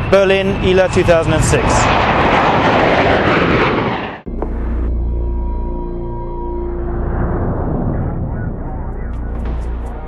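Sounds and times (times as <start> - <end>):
jet airliner flying overhead: 0.0 - 10.0.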